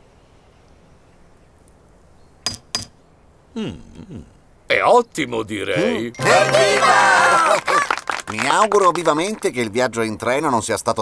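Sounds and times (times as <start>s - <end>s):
man humming mmm: 3.5s - 4.4s.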